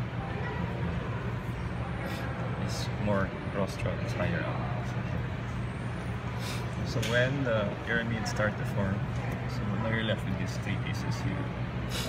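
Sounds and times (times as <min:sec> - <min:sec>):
low machine hum: 0:00.0 - 0:12.0.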